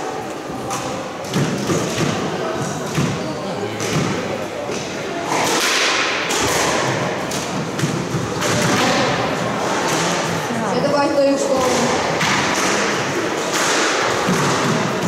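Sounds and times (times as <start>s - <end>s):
squash ball hitting racquets and walls: 0.0s - 10.5s, 11.5s - 15.0s.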